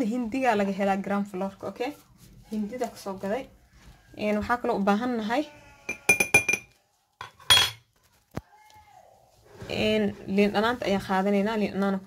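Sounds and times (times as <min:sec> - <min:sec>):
metal spoon clattering: 0:05.9 - 0:07.8.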